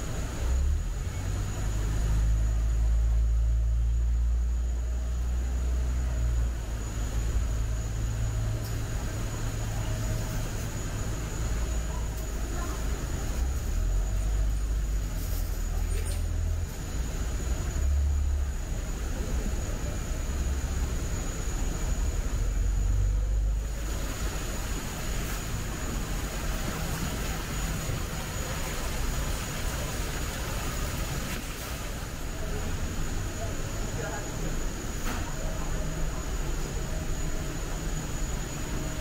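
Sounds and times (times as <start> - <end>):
indoor hiss and hum: 0.0 - 39.0
thin high steady tone: 0.0 - 39.0.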